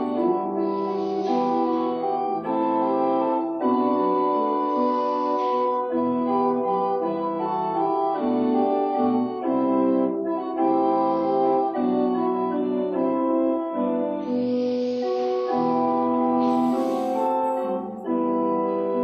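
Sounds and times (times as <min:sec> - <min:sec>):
organ playing held chords: 0:00.0 - 0:19.0
short hiss: 0:00.5 - 0:03.4, 0:14.2 - 0:17.9.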